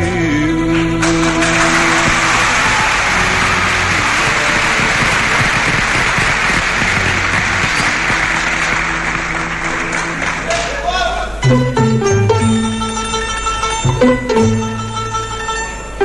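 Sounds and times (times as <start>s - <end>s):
orchestra low held notes: 0.0s - 16.0s
audience applauding: 0.7s - 10.9s.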